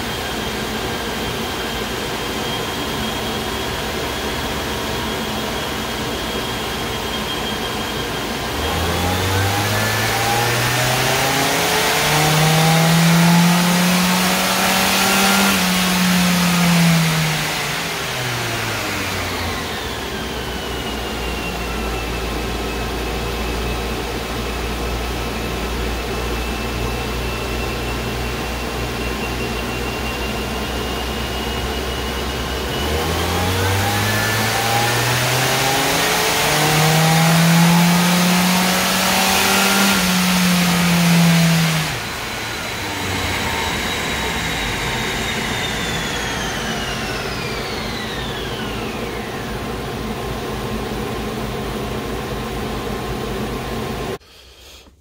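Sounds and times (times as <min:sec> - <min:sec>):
car engine revving on dyno: 0:00.0 - 0:54.2
high whine: 0:00.0 - 0:54.2.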